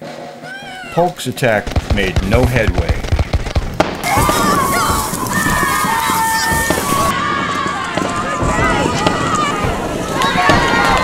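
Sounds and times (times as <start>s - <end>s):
scattered gunfire pops: 1.6s - 4.5s
many voices yelling: 4.0s - 11.0s.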